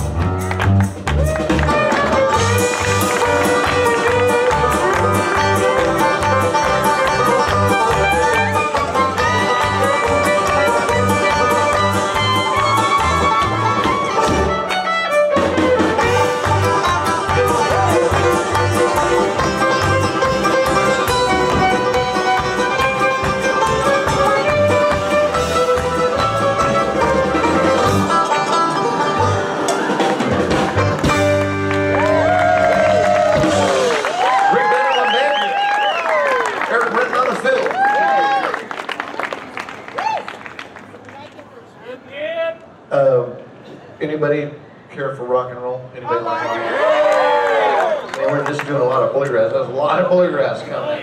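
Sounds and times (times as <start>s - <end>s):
electric bass: 0.0s - 14.7s, 15.3s - 34.1s
acoustic guitar: 0.0s - 32.0s
banjo: 0.0s - 32.1s
drums keeping a quick beat: 0.0s - 34.5s
fiddle: 0.6s - 33.9s.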